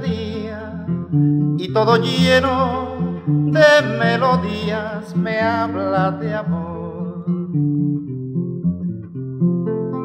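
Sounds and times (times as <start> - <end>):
acoustic guitar plucking: 0.0 - 10.0.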